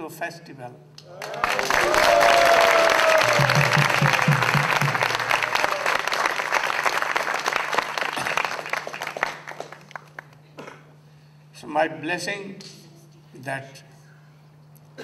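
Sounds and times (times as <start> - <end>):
audience applause: 1.1 - 10.4.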